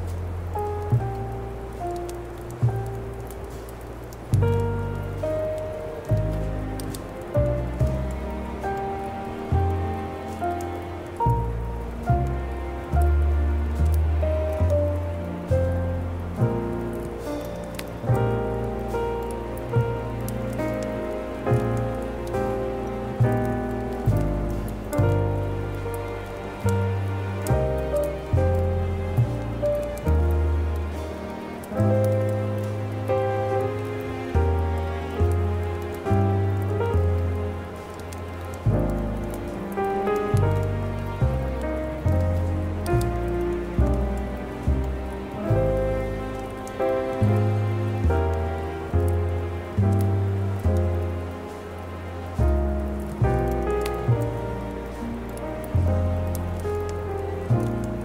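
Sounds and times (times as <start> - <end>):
slow instrumental christmas music: 0.0 - 58.0
wood fire crackling: 0.0 - 58.0.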